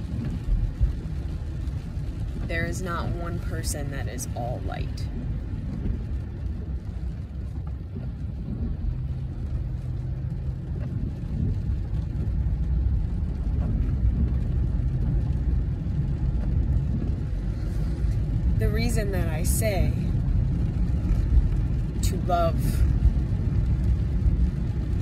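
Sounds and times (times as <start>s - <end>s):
car interior road rumble: 0.0s - 25.0s.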